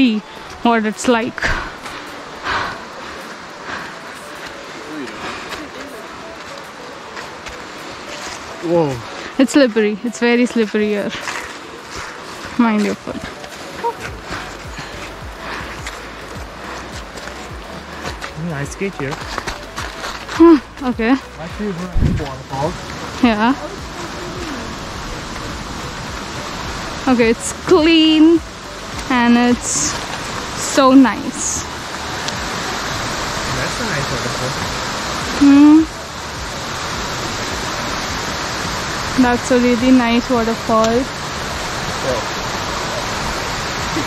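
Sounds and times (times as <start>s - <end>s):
faint voices talking: 0.0s - 26.5s
steady hiss: 0.0s - 44.0s
stream rushing over rocks: 0.0s - 44.0s
footsteps on snowy muddy trail: 0.3s - 33.7s.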